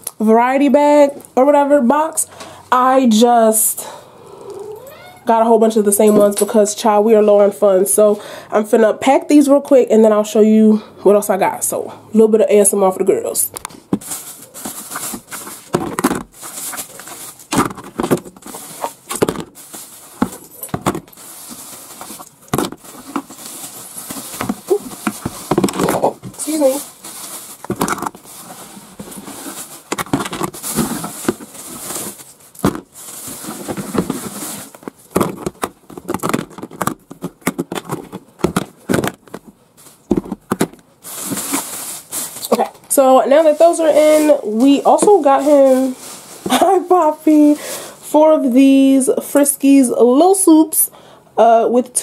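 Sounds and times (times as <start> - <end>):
plastic rustling: 13.4 - 49.0.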